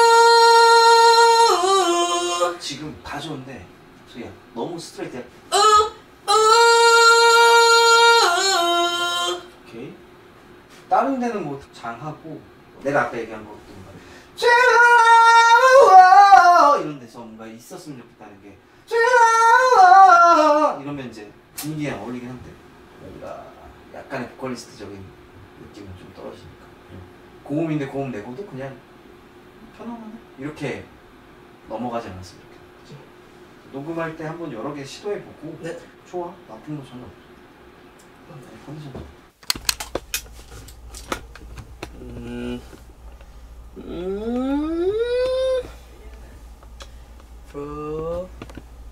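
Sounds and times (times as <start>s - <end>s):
person singing: 0.0s - 2.6s, 5.5s - 9.5s, 43.8s - 45.8s
low steady hum: 0.0s - 48.9s
headphones clicking and rustling: 39.4s - 43.3s.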